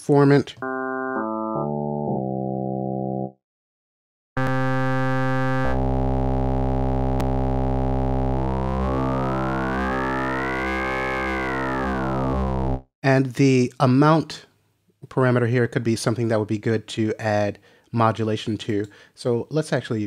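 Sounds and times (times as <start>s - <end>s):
held synthesizer note: 4.4s - 12.9s
resonant synth sweep: 4.4s - 12.9s.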